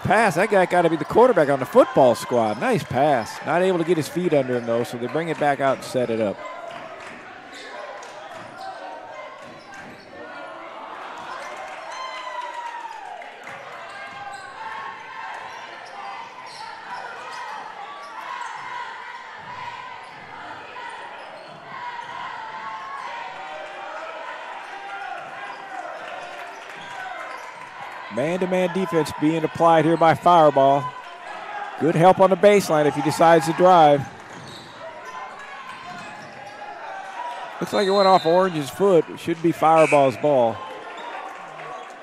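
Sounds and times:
voices echoing in hall: 0.0s - 42.0s.

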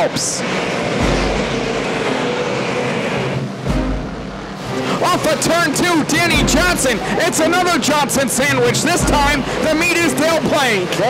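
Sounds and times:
race car engines roaring: 0.0s - 11.0s.

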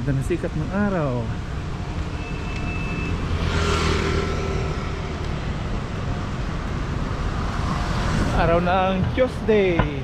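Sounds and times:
city traffic rumble: 0.0s - 10.0s
vehicle passing close by: 2.9s - 5.9s.

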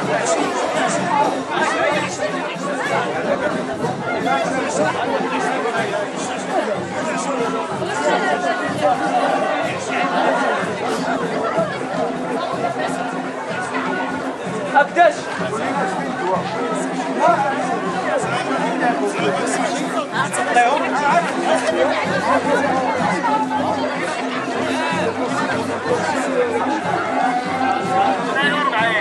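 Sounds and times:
crowd chatter: 0.0s - 29.0s.

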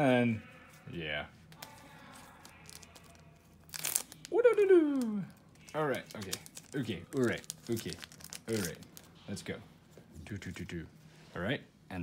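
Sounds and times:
foil wrapper crinkling: 1.6s - 9.1s
foil wrapper ripping: 1.6s - 9.1s.

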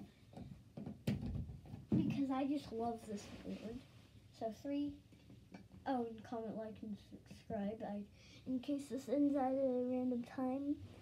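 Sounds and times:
movement on carpeted floor: 2.9s - 4.2s.

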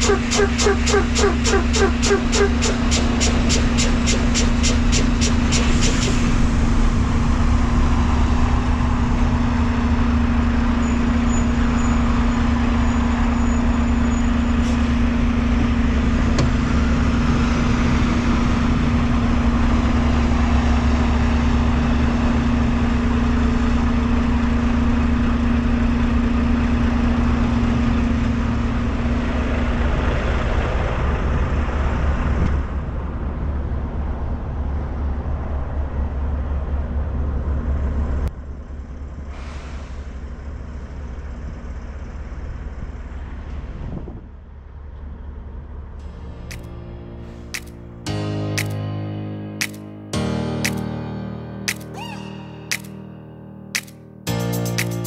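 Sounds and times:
truck diesel engine droning: 0.0s - 54.7s.

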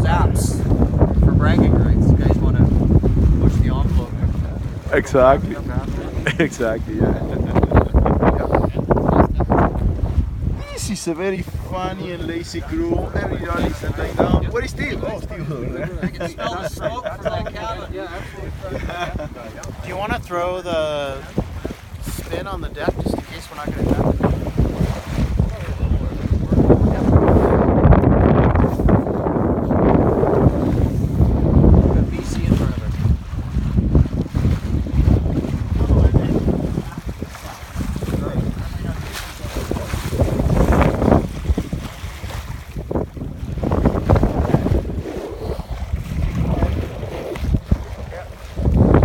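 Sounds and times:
water rushing past hull: 0.0s - 49.0s
wind buffeting microphone: 0.0s - 49.0s.

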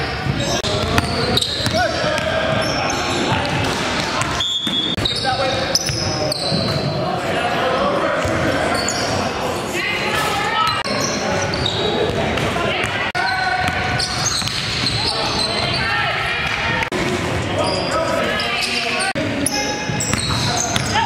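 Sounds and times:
indistinct voices in gym: 0.0s - 21.0s.

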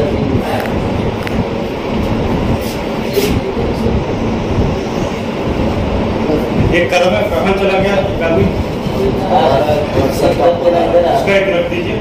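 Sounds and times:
loud steady background noise: 0.0s - 12.0s
man speaking indistinctly: 3.0s - 4.3s, 6.0s - 12.0s.

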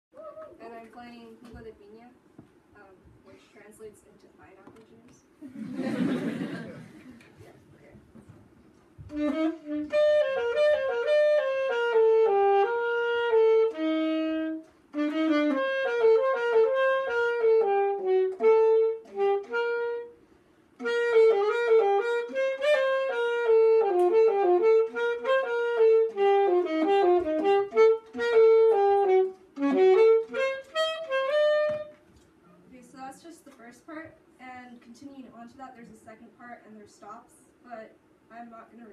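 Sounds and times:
solo saxophone melody: 9.0s - 32.1s.

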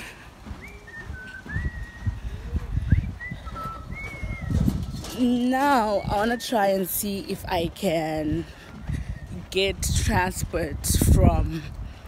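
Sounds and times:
wind rumble on microphone: 0.0s - 12.0s
birds whistling: 0.5s - 6.9s.

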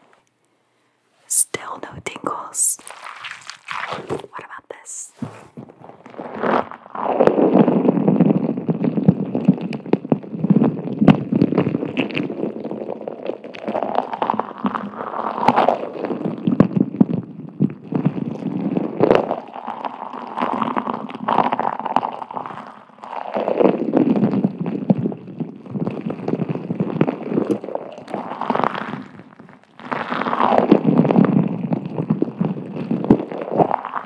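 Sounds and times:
beads swooshing in plastic sphere: 2.5s - 8.4s.

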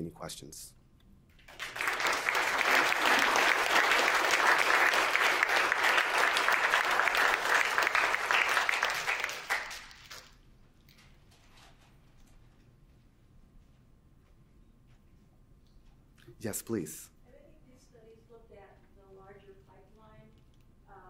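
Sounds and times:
audience applauding: 1.4s - 10.4s.

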